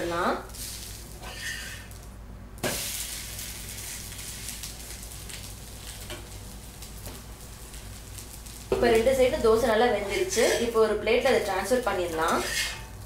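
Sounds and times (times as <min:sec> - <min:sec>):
batter sizzling on a griddle: 0:00.0 - 0:13.0.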